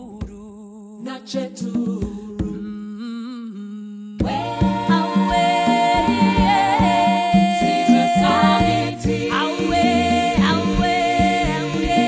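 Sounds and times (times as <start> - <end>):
vocal group humming in harmony: 1.0 - 12.0.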